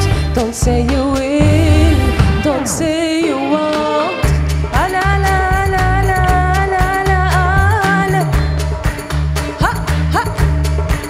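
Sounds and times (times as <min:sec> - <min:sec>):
steady bass line: 0:00.0 - 0:03.4, 0:04.2 - 0:11.0
drum kit strokes: 0:00.0 - 0:09.1.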